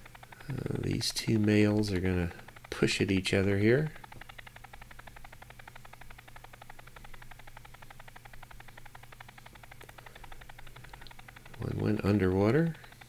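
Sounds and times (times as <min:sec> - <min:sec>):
low steady hum: 0:00.0 - 0:13.0
rapid stuttering audio snippets: 0:00.0 - 0:13.0.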